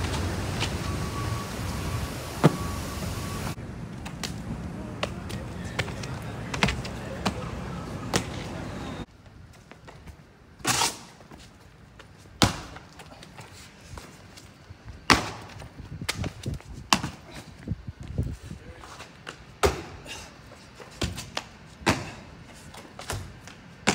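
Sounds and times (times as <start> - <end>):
sneakers landing on concrete: 4.0 - 8.6, 9.8 - 14.2, 14.9 - 18.1, 18.9 - 20.2, 20.8 - 23.9.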